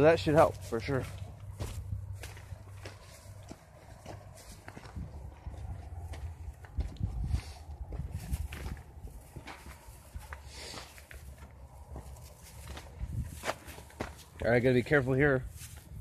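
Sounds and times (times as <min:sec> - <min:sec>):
footsteps on rocky dirt trail: 0:00.2 - 0:14.6.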